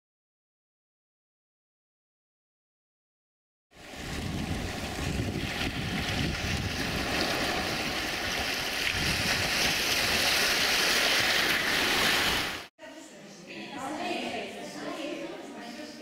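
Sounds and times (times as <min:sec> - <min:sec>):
wind rumble on microphone: 0:03.8 - 0:10.2
sea surf washing over rocks: 0:03.8 - 0:12.7.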